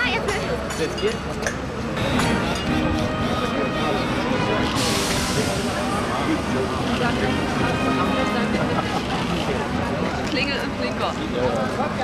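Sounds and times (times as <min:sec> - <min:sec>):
people talking indistinctly: 0:00.0 - 0:12.0
tram running: 0:01.6 - 0:12.0
sudden hiss: 0:04.7 - 0:06.5.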